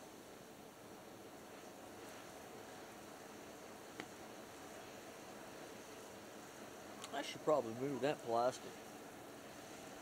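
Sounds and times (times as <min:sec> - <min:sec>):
wood fire burning: 0:00.0 - 0:10.0
fire crackling pop: 0:03.9 - 0:04.2.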